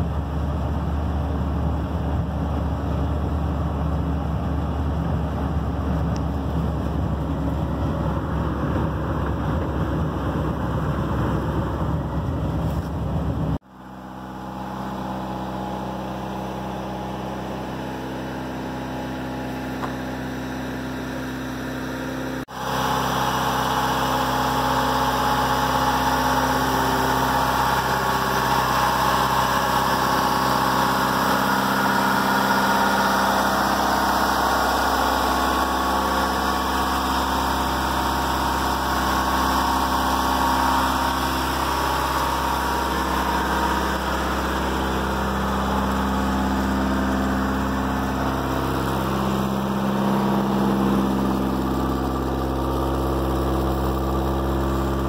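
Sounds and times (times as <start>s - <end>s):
vehicle engine idling: 0.0s - 55.0s.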